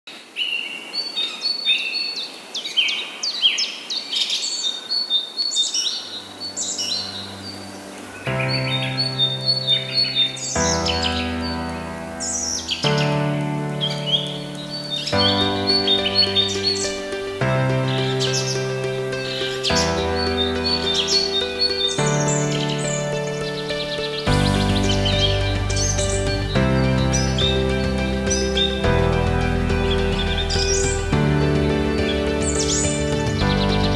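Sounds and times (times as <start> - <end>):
songbirds chirping and singing: 0.4 - 33.9
background music with held chords: 6.2 - 33.9.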